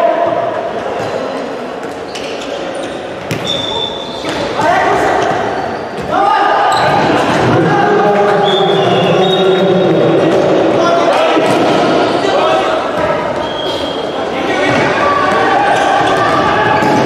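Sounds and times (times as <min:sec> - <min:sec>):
players shouting: 0:03.4 - 0:17.0.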